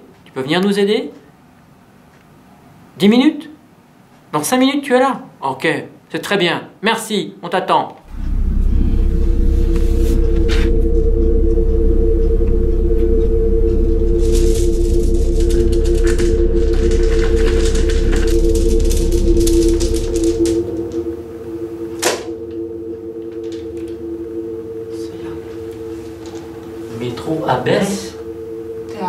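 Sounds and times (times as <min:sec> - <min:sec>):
low rumble: 0:08.0 - 0:29.0
low suspense drone: 0:08.0 - 0:29.0
sharp hit: 0:08.0 - 0:29.0.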